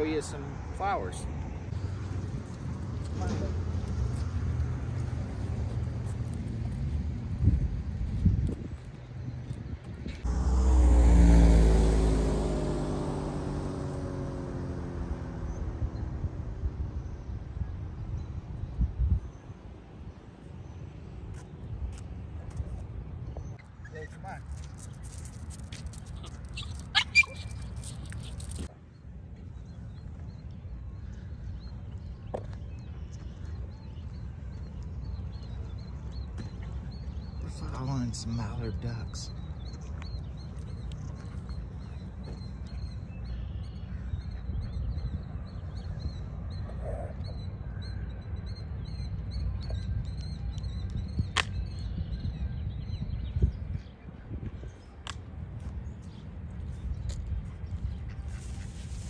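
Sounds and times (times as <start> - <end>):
bird chirps: 23.3 - 28.7.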